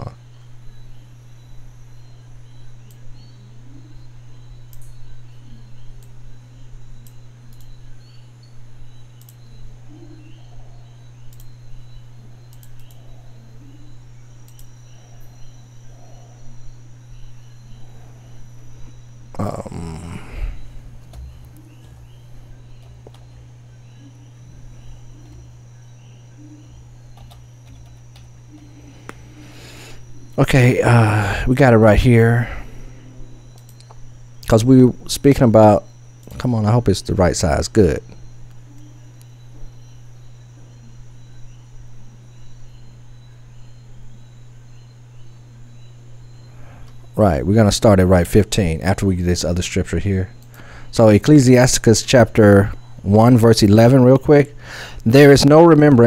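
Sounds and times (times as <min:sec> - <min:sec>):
low electrical hum: 0:00.0 - 0:56.0.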